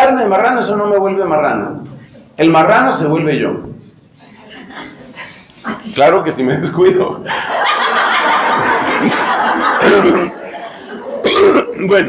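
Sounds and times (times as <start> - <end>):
audience laughing: 4.3 - 11.3.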